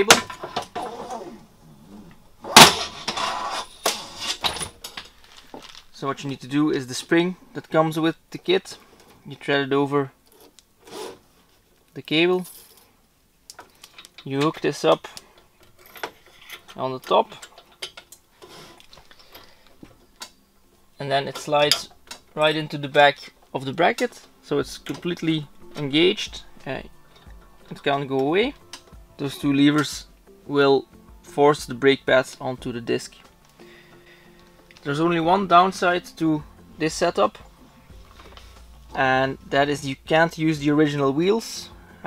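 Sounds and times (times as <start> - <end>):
rustling and scraping: 0.0 - 6.4, 10.2 - 13.0, 13.6 - 20.4, 37.0 - 40.0.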